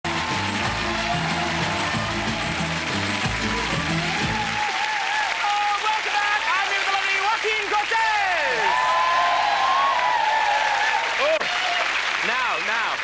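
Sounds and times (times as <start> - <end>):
upbeat music: 0.0 - 4.8
studio audience applauding: 0.0 - 13.0.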